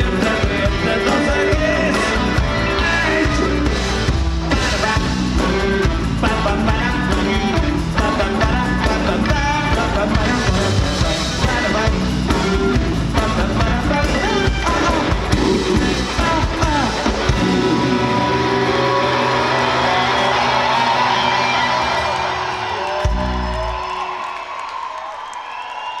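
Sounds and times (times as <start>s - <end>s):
rock band playing: 0.0s - 24.0s
crowd cheering and whooping: 17.2s - 26.0s.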